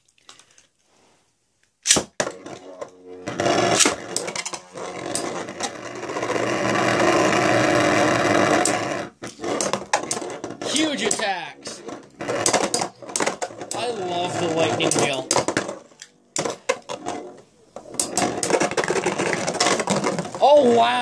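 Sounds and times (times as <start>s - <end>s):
spinning tops launch crack: 1.8s - 2.2s
spinning tops scraping whir: 3.2s - 15.9s
spinning tops knocking: 3.3s - 20.4s.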